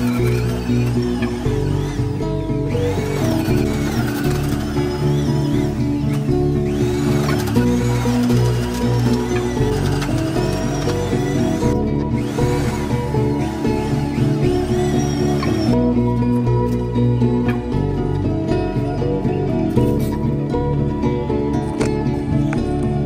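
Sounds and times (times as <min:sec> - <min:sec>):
background music with low chords: 0:00.0 - 0:23.0.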